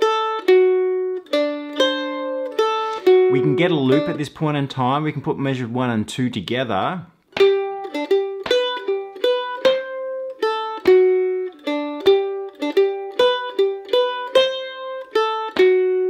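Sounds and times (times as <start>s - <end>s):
mandolin picking single notes: 0.0s - 16.0s.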